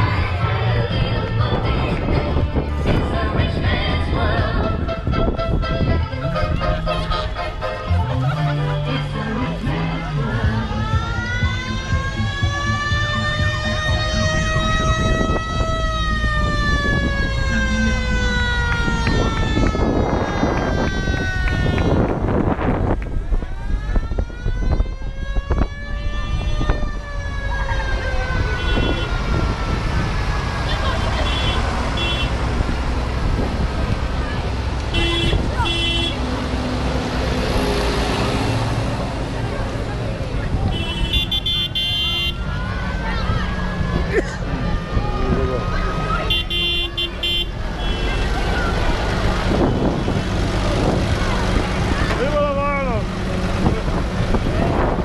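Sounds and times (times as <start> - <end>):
vehicle engines rumbling: 0.0 - 55.0.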